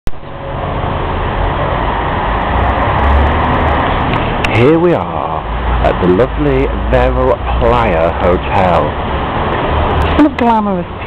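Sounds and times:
road traffic roar: 0.1 - 11.0.

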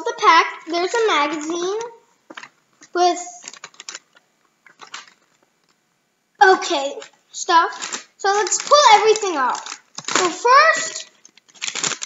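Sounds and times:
plastic wrap rustling: 0.1 - 5.8, 6.5 - 12.0.

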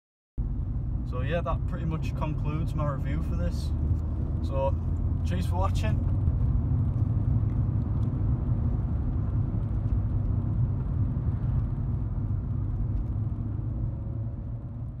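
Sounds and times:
car engine and road noise: 0.4 - 15.0.

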